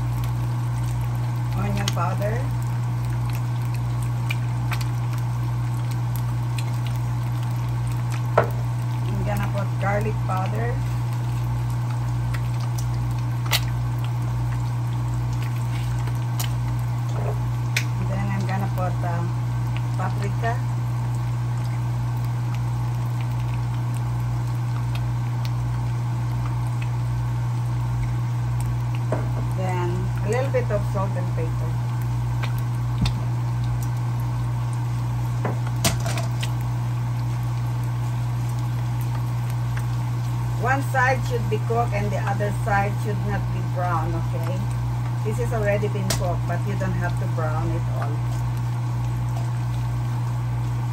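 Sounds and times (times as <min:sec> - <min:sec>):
constant low hum: 0:00.0 - 0:50.9
potatoes sizzling in a pan: 0:00.0 - 0:50.9.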